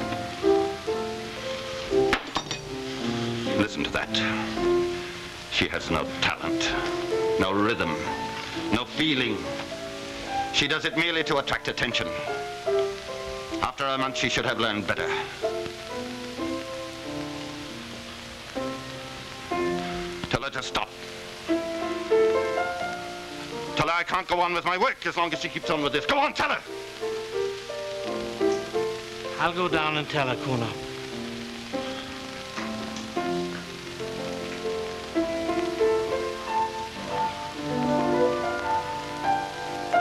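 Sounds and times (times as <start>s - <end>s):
slow instrumental melody: 0.0s - 23.8s, 24.7s - 40.0s
steady hiss: 0.0s - 40.0s
slow keyboard chords: 30.4s - 40.0s.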